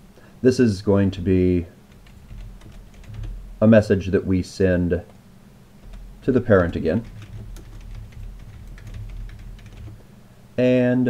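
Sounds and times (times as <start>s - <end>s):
keyboard typing: 1.9s - 3.5s, 5.8s - 10.0s.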